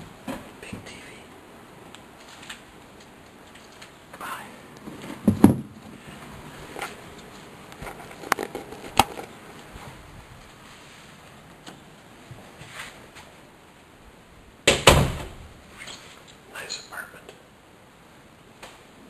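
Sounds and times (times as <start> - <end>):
loud thump: 14.7 - 15.4.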